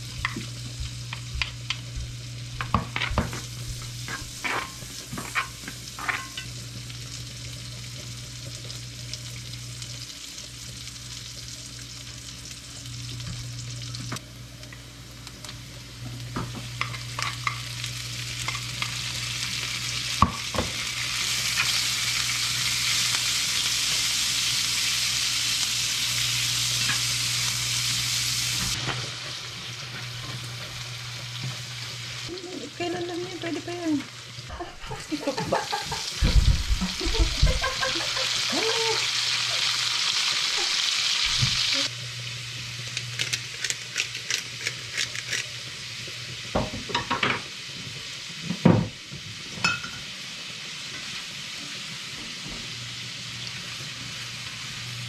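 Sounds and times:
meat sizzling in a pan: 0.0s - 55.0s.

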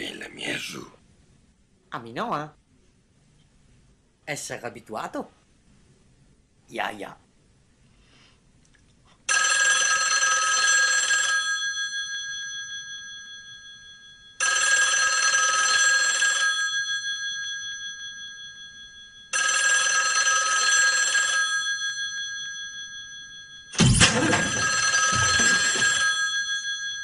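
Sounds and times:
telephone bell ringing: 9.3s - 27.0s.

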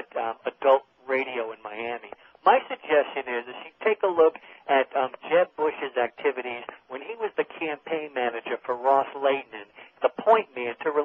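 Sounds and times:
talk radio conversation: 0.0s - 11.0s.

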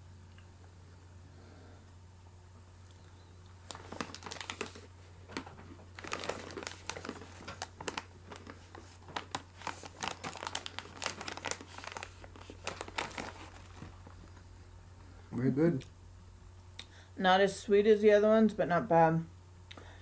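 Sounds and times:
plastic pouch crinkling: 3.6s - 14.4s.

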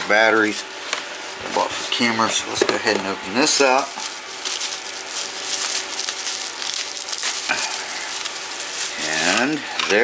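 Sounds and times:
bubble wrap crinkling: 3.6s - 9.7s.

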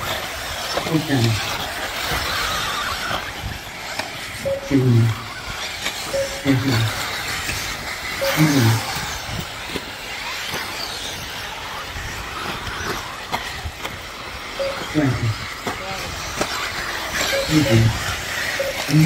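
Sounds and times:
rc cars racing on dirt: 0.0s - 19.0s
voices: 0.0s - 19.0s.

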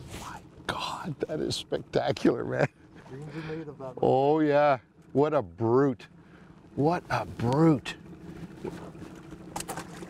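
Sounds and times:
steady low hum: 0.0s - 10.0s
water splashing beside boat: 0.0s - 10.0s.

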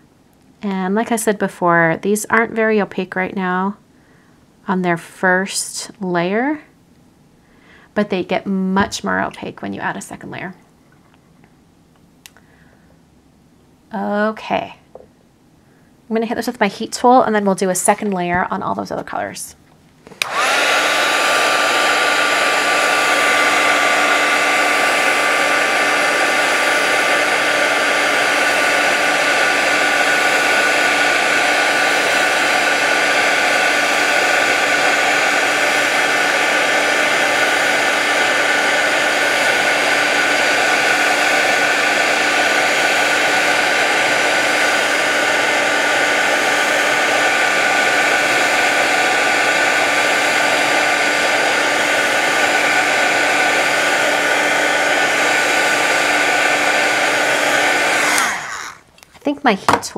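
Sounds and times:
heat gun blowing air: 20.0s - 58.9s.

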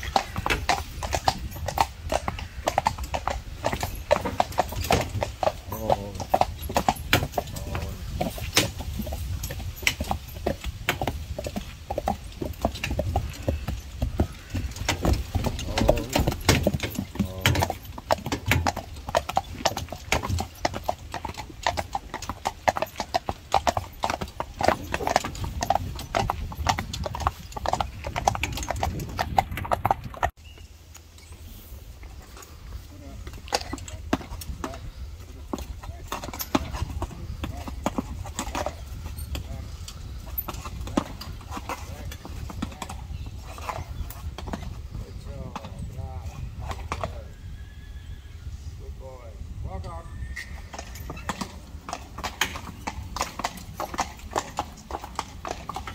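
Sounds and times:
horse hooves clip-clopping on pavement: 0.0s - 31.2s, 31.9s - 47.4s, 50.4s - 55.9s.

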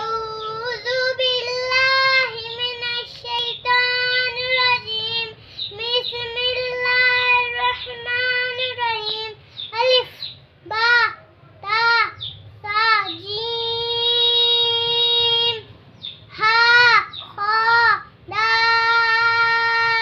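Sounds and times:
girl chanting aloud: 16.3s - 20.0s.

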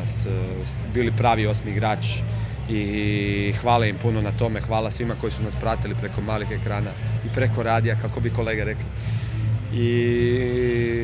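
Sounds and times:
steady low hum: 5.8s - 11.0s.

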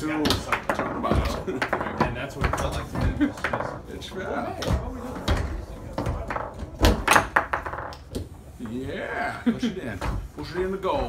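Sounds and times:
foosball knocks and clacks: 0.0s - 9.0s.

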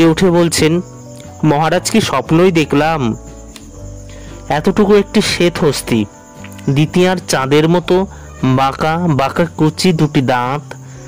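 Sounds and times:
person reading aloud: 0.0s - 0.8s, 1.4s - 3.2s, 4.5s - 10.8s
faint steady background sound: 0.0s - 11.0s.

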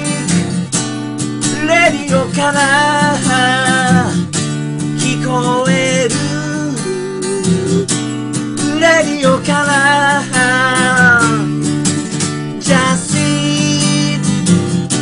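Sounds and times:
person singing: 0.0s - 0.4s, 1.5s - 4.2s, 5.0s - 8.0s, 8.6s - 14.4s
acoustic guitar strumming: 0.0s - 15.0s.

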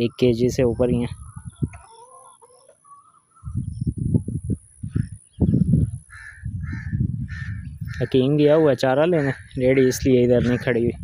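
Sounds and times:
loud low microphone rumble: 3.5s - 8.1s.

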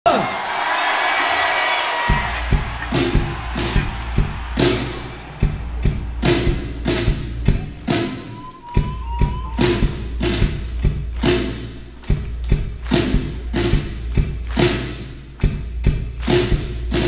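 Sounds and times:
rock band playing: 2.0s - 17.0s
hard drum hits: 2.1s - 7.7s
bass line: 2.1s - 17.0s.

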